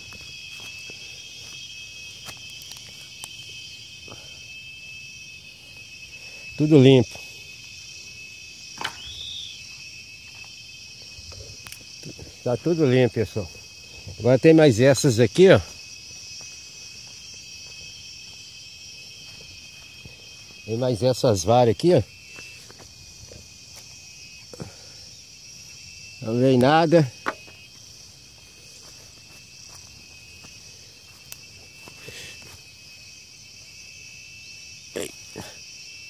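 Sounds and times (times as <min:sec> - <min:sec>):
insect chorus chirring: 0:00.0 - 0:36.0
rising and falling whistle: 0:01.8 - 0:10.4
faint footsteps on the bank: 0:28.3 - 0:32.6.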